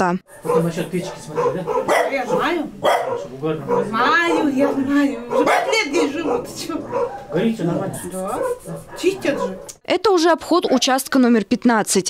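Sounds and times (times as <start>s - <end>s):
two people talking: 0.0s - 12.0s
dog barking: 0.3s - 9.8s.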